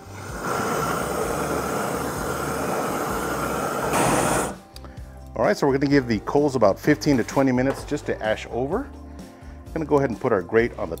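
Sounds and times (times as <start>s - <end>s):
torch flame rushing: 0.0s - 4.6s.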